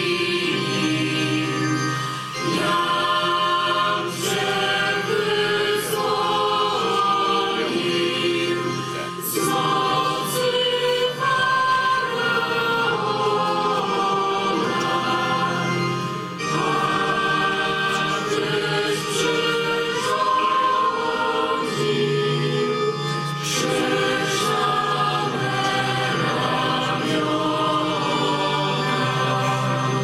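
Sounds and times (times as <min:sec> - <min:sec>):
choir singing a hymn: 0:00.0 - 0:30.0.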